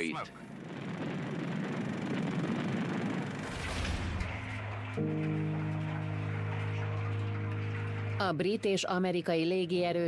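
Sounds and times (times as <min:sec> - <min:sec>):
aircraft engines droning: 0:00.0 - 0:09.3.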